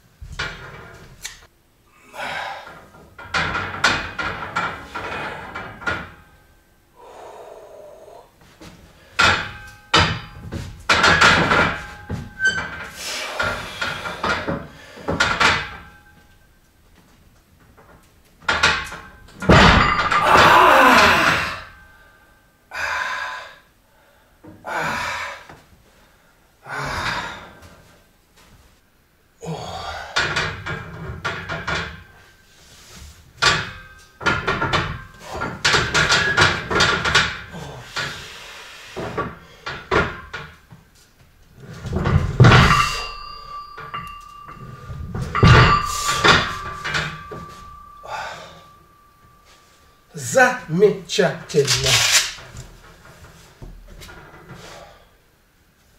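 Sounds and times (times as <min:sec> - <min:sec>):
person exhaling and breathing hard: 0:01.9 - 0:02.8, 0:07.0 - 0:08.4, 0:20.2 - 0:21.7, 0:22.7 - 0:25.5, 0:48.0 - 0:48.7
barbell clanking against rack: 0:03.0 - 0:06.3, 0:09.1 - 0:16.4, 0:18.4 - 0:21.8, 0:33.4 - 0:38.4, 0:41.7 - 0:49.6
loaded bar thudding down: 0:09.2 - 0:16.3, 0:18.4 - 0:21.8, 0:41.6 - 0:49.3.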